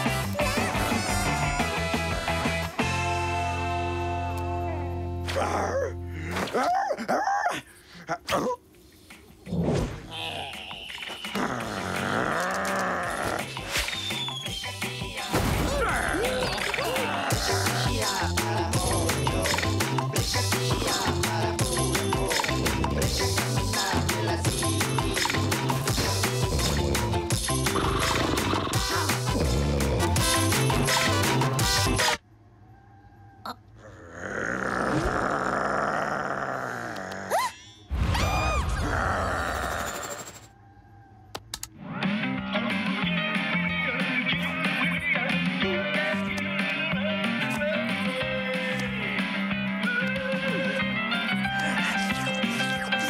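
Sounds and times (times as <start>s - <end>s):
background music: 0.0s - 6.6s, 9.2s - 32.2s, 41.8s - 53.0s
cartoon dog crying: 0.4s - 1.9s, 5.3s - 8.6s, 36.0s - 41.1s
cartoon fox snoring: 11.3s - 13.6s, 25.8s - 30.7s, 33.8s - 37.3s
thin falling whistle: 13.8s - 14.8s.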